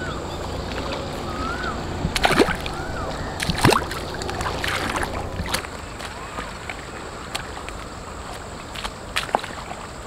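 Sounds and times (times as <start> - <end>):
water splashing and sloshing: 0.0 - 10.0.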